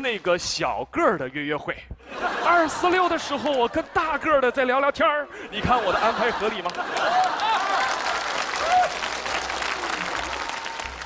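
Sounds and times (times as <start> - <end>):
audience applauding: 6.3 - 11.0.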